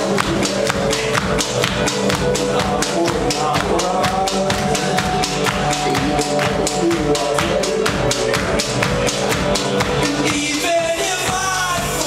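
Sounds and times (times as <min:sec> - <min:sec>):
bass guitar: 0:00.0 - 0:12.0
drum kit beat: 0:00.0 - 0:12.0.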